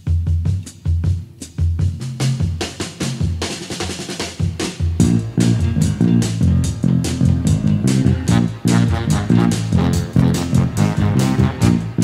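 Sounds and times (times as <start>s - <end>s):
drum kit: 0.0s - 12.0s
soul band music: 4.3s - 12.0s
electric bass line: 4.9s - 12.0s.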